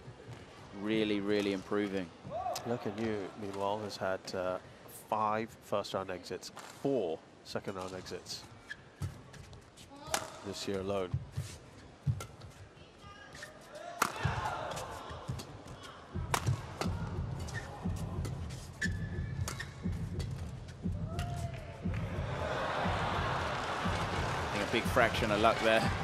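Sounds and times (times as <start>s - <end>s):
shoe squeaks on court: 8.5s - 9.9s, 17.4s - 20.0s
rackets hitting shuttlecock: 10.0s - 10.4s, 14.0s - 15.5s, 16.3s - 20.5s
crowd cheering: 21.1s - 26.0s.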